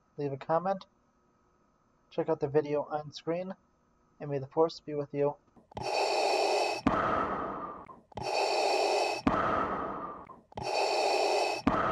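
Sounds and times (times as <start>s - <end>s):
respirator breathing: 5.7s - 11.9s.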